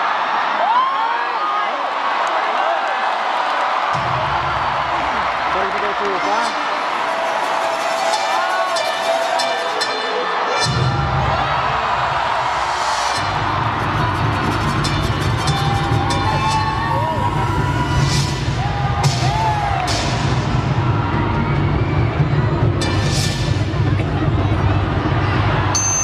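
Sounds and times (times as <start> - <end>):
crowd cheering and whooping: 0.0 - 26.0
loud dance music: 3.9 - 26.0
heavy bass beat: 13.1 - 25.8.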